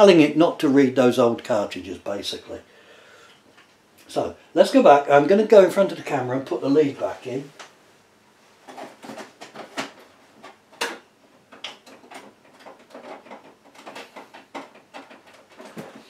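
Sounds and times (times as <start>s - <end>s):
power lead clicks and rustling: 8.6s - 16.0s.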